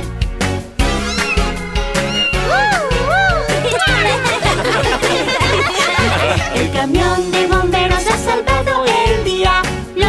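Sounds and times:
cheerful children's music: 0.4 - 10.0.

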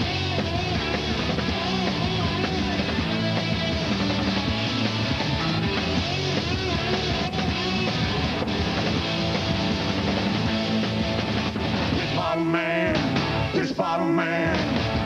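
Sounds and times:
punk rock band playing: 0.0 - 15.0.

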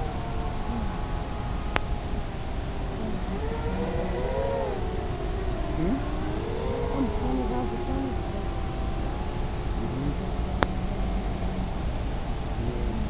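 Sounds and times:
quadcopter motors whining: 0.0 - 13.0
steady hiss: 0.0 - 13.0.

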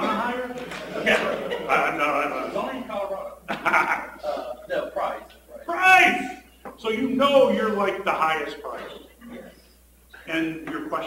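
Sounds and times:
person talking: 4.2 - 9.6.

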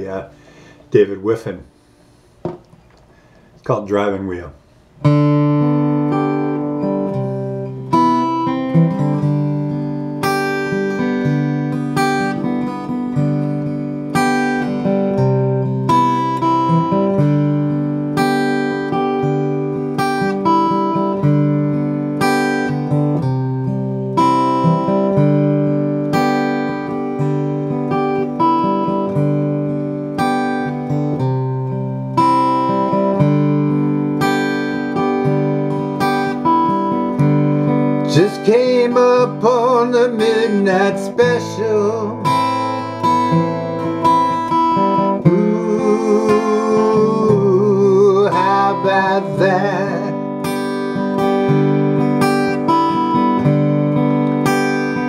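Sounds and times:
acoustic guitar strumming chords: 0.0 - 55.0.

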